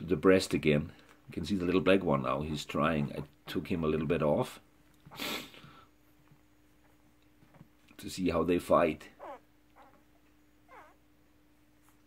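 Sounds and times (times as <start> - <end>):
puppies squeaking: 9.2 - 11.1.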